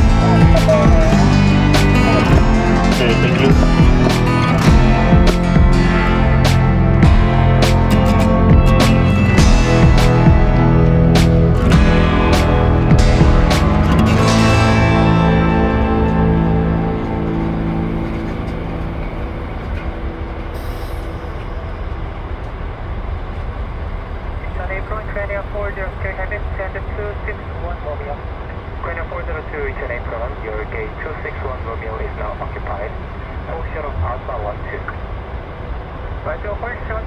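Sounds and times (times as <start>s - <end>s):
indistinct voices: 0.0s - 6.8s
music: 0.0s - 21.9s
low vehicle engine rumble: 0.0s - 37.0s.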